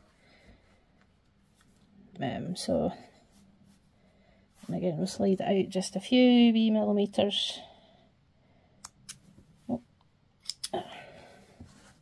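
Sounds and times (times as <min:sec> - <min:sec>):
yarn snips clicking: 0:10.4 - 0:10.8.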